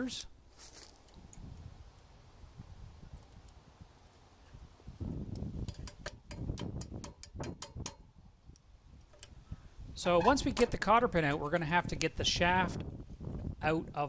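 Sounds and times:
pliers clicking and scraping metal: 0:05.4 - 0:09.4.

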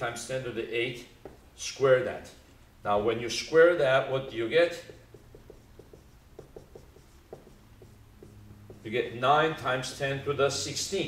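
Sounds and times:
marker writing on whiteboard: 0:01.0 - 0:02.5, 0:04.2 - 0:10.1.

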